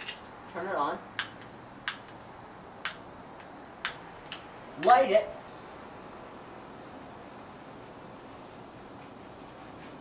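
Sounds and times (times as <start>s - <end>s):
igniter clicks: 1.2s - 5.1s.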